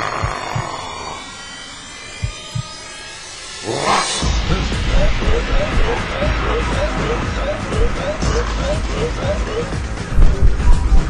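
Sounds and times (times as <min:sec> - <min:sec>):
hissing swell: 0:00.0 - 0:11.0
horror film soundtrack: 0:00.0 - 0:11.0
rising whoosh: 0:00.2 - 0:11.0
heartbeat-like double thump: 0:02.2 - 0:02.7, 0:04.2 - 0:11.0.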